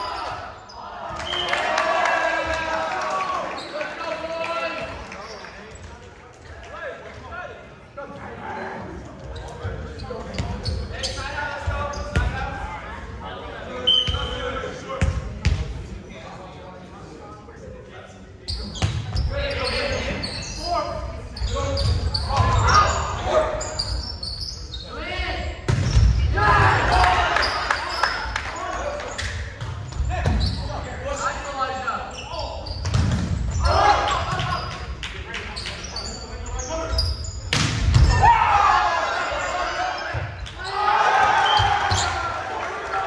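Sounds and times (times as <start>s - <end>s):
players shouting: 26.2s - 29.2s, 33.5s - 34.7s, 38.0s - 43.0s.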